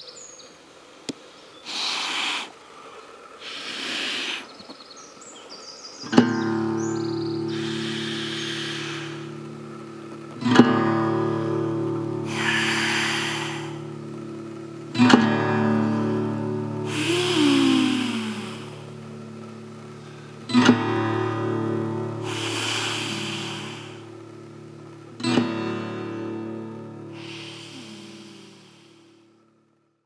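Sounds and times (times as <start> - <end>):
acoustic guitar chords ringing: 6.0 - 29.8.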